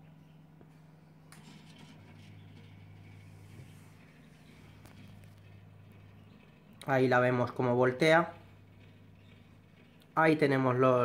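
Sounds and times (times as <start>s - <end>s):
small fan humming: 0.0s - 11.0s
turntable motor lower hum: 0.0s - 11.0s.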